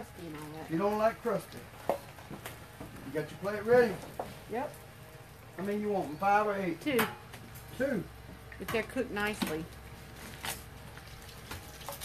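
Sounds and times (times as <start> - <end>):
eggs sizzling on a griddle: 0.0 - 12.0.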